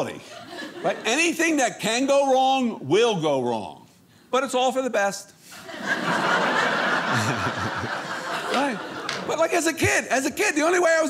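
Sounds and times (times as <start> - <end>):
audience laughing: 5.6 - 9.3.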